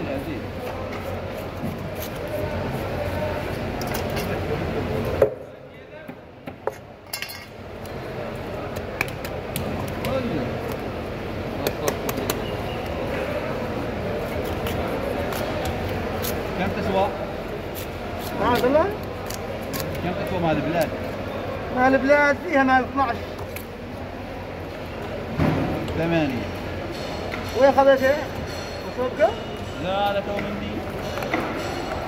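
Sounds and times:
voices and bustle: 0.0s - 6.3s, 7.8s - 32.0s.

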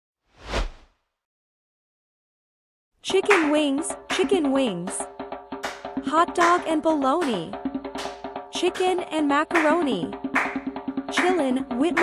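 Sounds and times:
whoosh sound effect: 0.4s - 0.9s.

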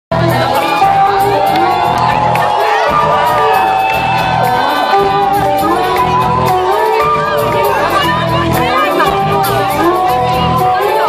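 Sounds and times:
crowd cheering and shouting: 0.1s - 11.0s
live rock band: 0.1s - 11.0s.

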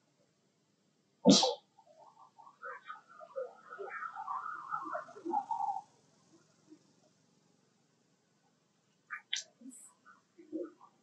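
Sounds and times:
monkeys chirping: 2.0s - 5.9s.

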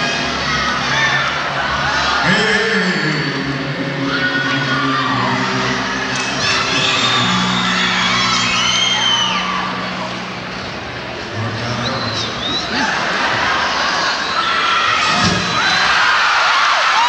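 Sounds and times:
band holding low notes: 0.0s - 14.0s
crowd cheering and screaming: 0.0s - 17.0s.

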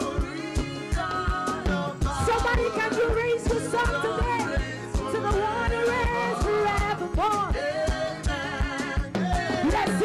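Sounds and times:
band accompaniment with steady beat: 0.0s - 10.0s
singers leading a gospel song: 0.0s - 10.0s.

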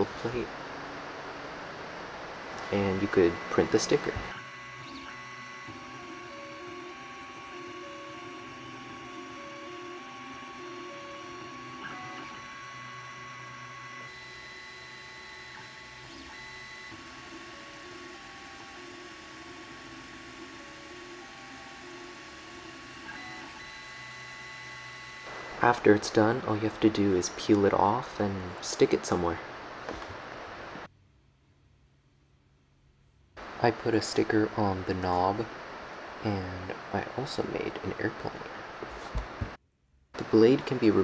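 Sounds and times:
steady fan tone: 0.0s - 30.9s
stepper motors whining: 2.0s - 27.7s.

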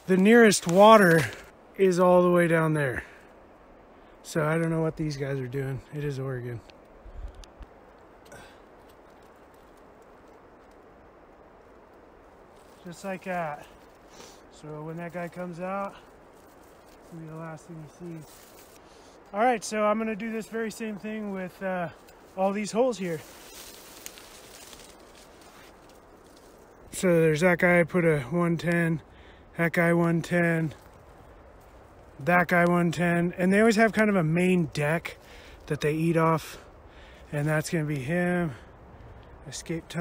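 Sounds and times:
steady faint hiss: 0.0s - 40.0s
faint rustling: 6.5s - 27.1s
light clicks: 6.6s - 10.8s.

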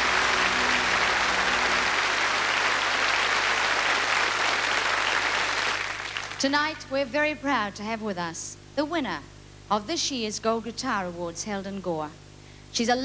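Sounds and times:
band low chord: 0.0s - 3.2s
audience applauding: 0.0s - 6.4s.

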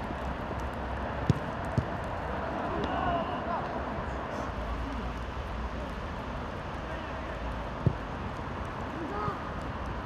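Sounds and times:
outdoor background noise: 0.0s - 10.0s
football being kicked: 1.2s - 2.0s, 7.8s - 8.1s.

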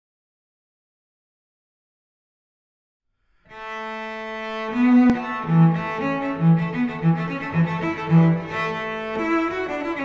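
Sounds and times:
cello bowing long note: 3.5s - 10.0s.

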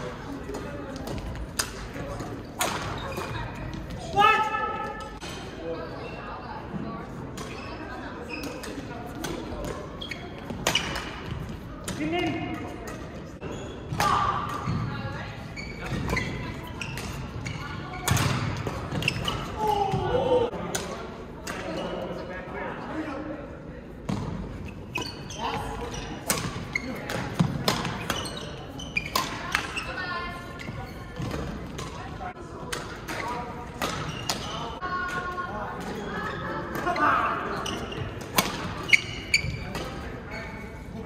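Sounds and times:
shoe squeaks on court floor: 2.4s - 3.8s, 7.4s - 8.9s, 9.6s - 11.4s, 13.4s - 14.0s, 14.6s - 19.6s, 24.6s - 32.0s, 33.2s - 34.8s, 35.9s - 40.9s
racket hitting shuttlecock: 26.2s - 28.3s, 38.2s - 39.0s.

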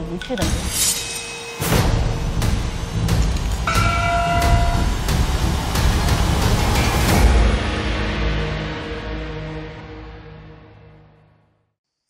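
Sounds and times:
sharp percussion hits: 0.3s - 9.2s
large gong ringing: 3.7s - 6.0s.

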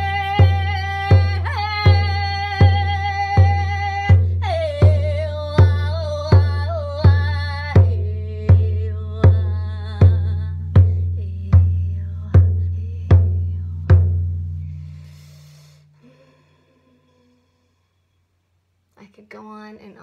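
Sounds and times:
woman's wordless sung cry: 0.0s - 13.1s
hand drum booming: 0.0s - 15.1s.

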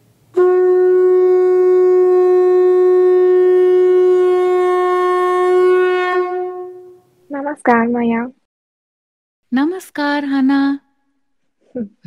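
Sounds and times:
long horn note: 0.3s - 7.1s.

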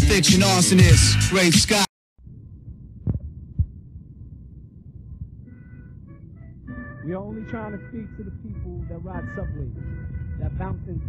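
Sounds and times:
low steady hum: 2.2s - 11.0s
deep thumps: 2.3s - 5.5s.

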